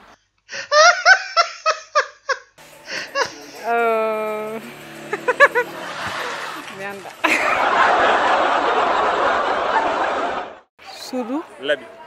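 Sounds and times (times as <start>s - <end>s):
person laughing: 0.6s - 3.8s, 5.1s - 7.8s.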